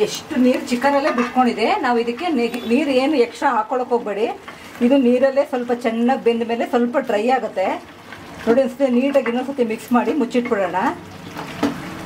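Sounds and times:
woman talking: 0.0s - 7.8s, 8.4s - 11.0s
chicken sizzling in a pan: 3.9s - 12.0s.

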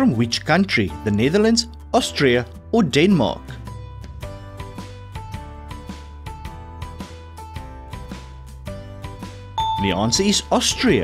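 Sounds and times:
plucked guitar-like background music: 0.0s - 11.0s
bell-like chime: 9.6s - 10.6s
man talking: 9.6s - 11.0s.

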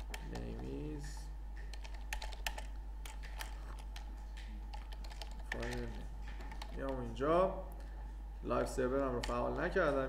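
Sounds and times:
keyboard typing clicks: 0.0s - 0.9s, 1.5s - 8.0s
steady low hum: 0.0s - 10.0s.

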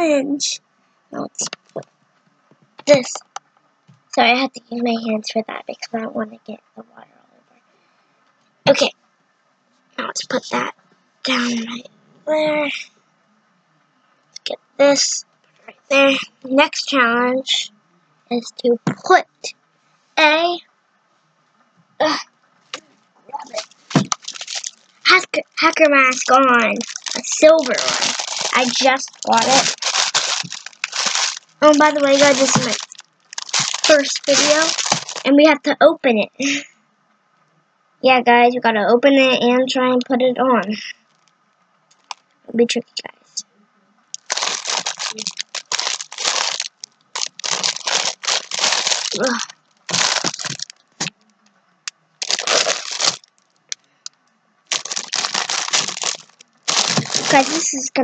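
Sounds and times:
child saying uh: 2.8s - 3.2s, 8.7s - 8.9s, 10.0s - 10.7s, 11.3s - 12.9s, 14.4s - 17.7s, 20.2s - 20.6s, 22.0s - 22.3s, 23.3s - 23.6s, 25.1s - 29.8s, 31.6s - 32.8s, 33.8s - 36.7s, 49.1s - 49.5s, 57.2s - 58.0s
plastic bag crinkling: 23.4s - 35.3s, 41.9s - 42.2s, 44.2s - 51.2s, 52.2s - 53.8s, 54.7s - 57.9s.

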